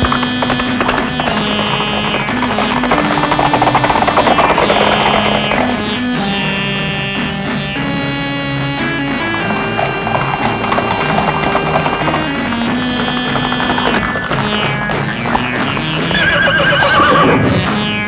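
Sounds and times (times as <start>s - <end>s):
film score music: 0.0s - 18.0s
horse whinnying: 16.1s - 17.8s.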